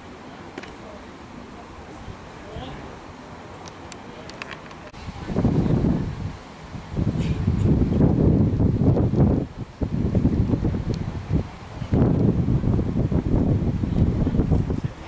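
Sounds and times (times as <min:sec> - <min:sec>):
wind buffeting microphone: 0:04.4 - 0:15.0.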